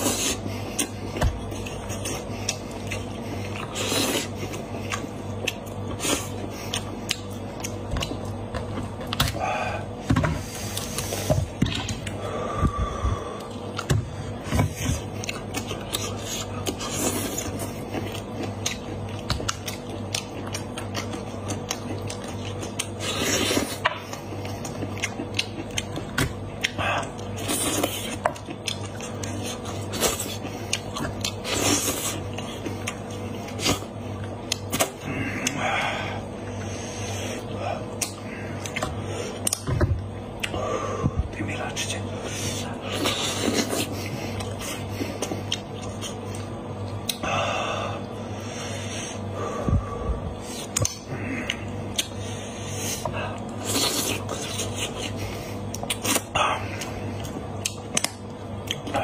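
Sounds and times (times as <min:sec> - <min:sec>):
wet chewing and lip sounds: 0:00.0 - 0:09.5, 0:10.4 - 0:35.6, 0:36.5 - 0:47.3, 0:50.2 - 0:59.0.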